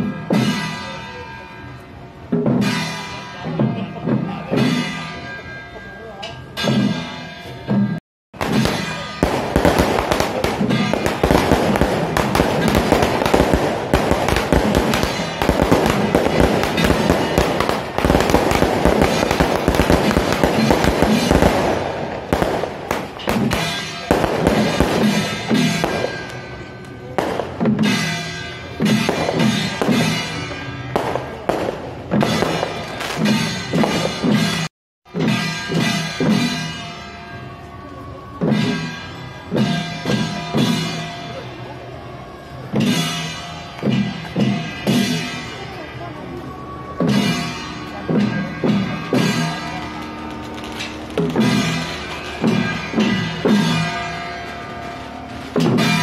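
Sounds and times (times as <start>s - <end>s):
drum-led procession music: 0.0s - 56.0s
firecrackers crackling: 8.4s - 37.0s, 42.6s - 46.2s, 47.0s - 56.0s.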